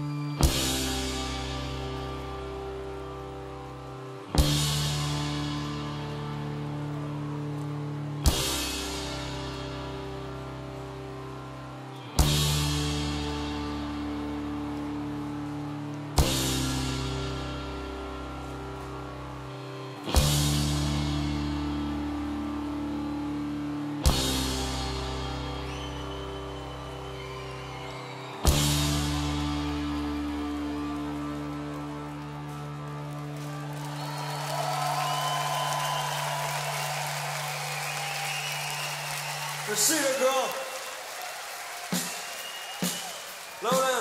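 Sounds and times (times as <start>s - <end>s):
rock band playing slow chords: 0.0s - 39.6s.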